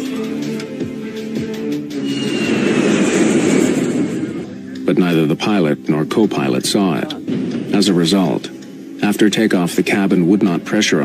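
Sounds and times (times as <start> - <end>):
documentary background music: 0.0 - 11.0
rushing noise: 2.0 - 4.5.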